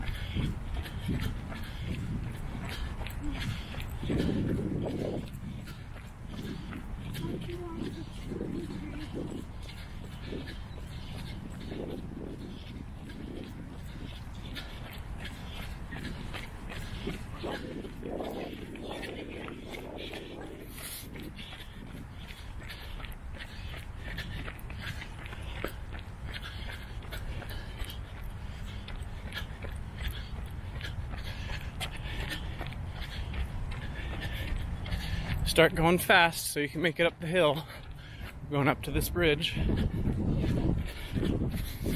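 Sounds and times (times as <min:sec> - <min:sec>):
wind rumble on microphone: 0:00.0 - 0:35.8, 0:38.2 - 0:41.9
footfalls on paved path: 0:00.0 - 0:41.9
heavy panting breath: 0:00.0 - 0:41.9.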